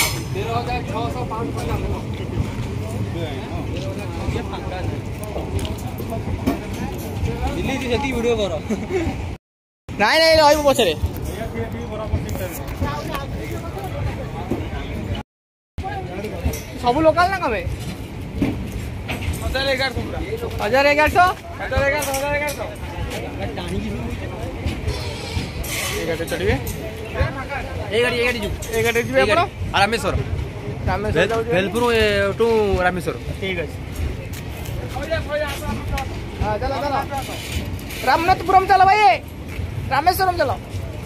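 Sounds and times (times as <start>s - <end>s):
low train rumble: 0.0s - 9.4s, 15.8s - 37.9s.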